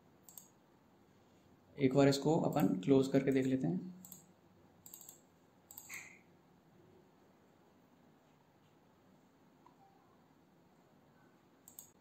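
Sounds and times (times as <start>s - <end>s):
mouse clicks: 0.2s - 0.5s, 4.0s - 6.2s, 11.6s - 12.0s.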